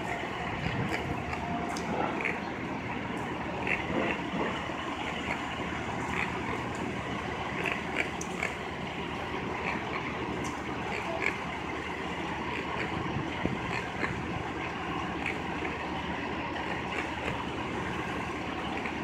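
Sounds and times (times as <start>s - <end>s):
idling vehicles and traffic: 0.0s - 19.0s.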